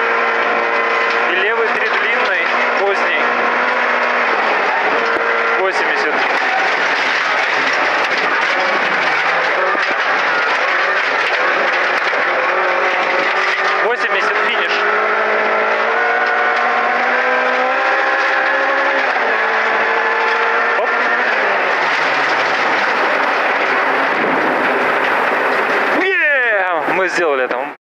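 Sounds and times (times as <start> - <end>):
loud road noise: 0.0 - 27.8
rally car engine driven hard: 0.0 - 27.8.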